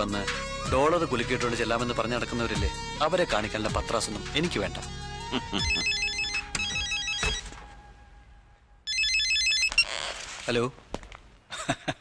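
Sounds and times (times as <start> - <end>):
electronic telephone ringer trilling: 5.7 - 7.5, 8.9 - 10.0.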